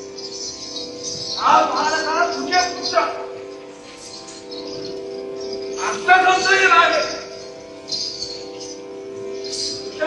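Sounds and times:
held drone notes: 0:00.0 - 0:10.0.

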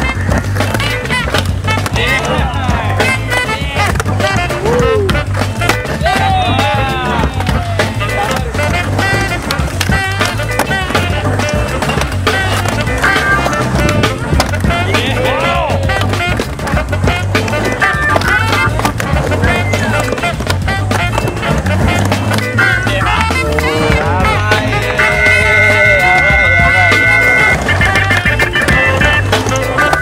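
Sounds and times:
background music with bass beat: 0:00.0 - 0:30.0
skateboard knocks: 0:00.0 - 0:30.0
skateboard wheels rolling on concrete: 0:00.0 - 0:30.0.

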